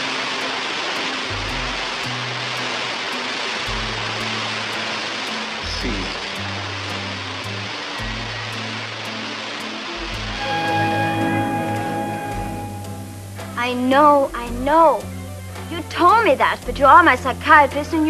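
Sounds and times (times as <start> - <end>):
fountain water rushing and splashing: 0.0 - 18.0
slow low music notes: 0.0 - 18.0.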